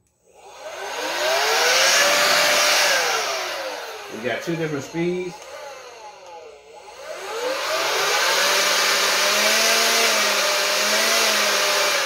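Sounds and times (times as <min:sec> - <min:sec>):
leaf blower whirring: 0:00.0 - 0:12.0.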